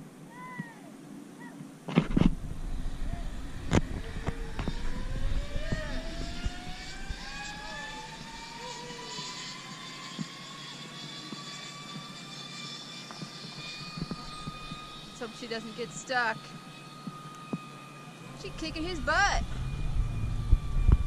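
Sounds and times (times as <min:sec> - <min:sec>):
zip-line pulleys whining on cable: 0:01.9 - 0:21.0.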